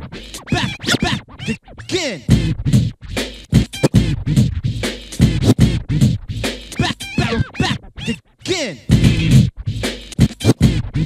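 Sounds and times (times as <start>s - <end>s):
vinyl record scratching: 0.0s - 11.0s
faint backing beat: 2.3s - 8.2s, 8.9s - 11.0s.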